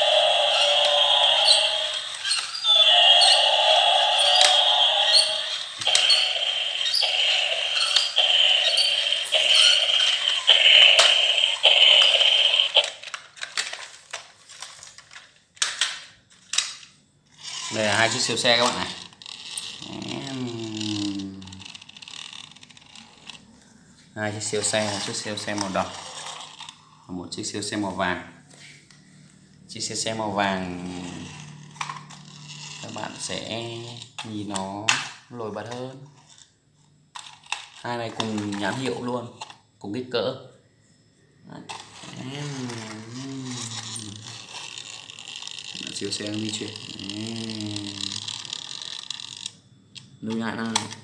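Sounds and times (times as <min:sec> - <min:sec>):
toy car wheels scraping tiles: 0:00.0 - 0:15.8, 0:17.3 - 0:23.6, 0:24.2 - 0:27.1, 0:29.8 - 0:39.6, 0:41.6 - 0:49.6.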